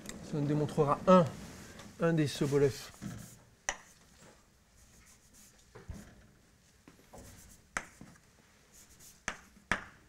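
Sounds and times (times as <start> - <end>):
chalk scratching on blackboard: 2.4 - 4.0, 4.8 - 5.7, 7.2 - 8.1, 8.7 - 9.6
chalk tapping: 2.9 - 4.0, 7.1 - 10.0.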